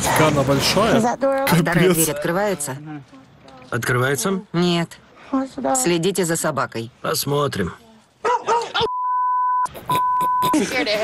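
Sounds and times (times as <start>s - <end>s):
censor bleeps: 8.8s - 10.6s
people speaking: 10.4s - 11.0s.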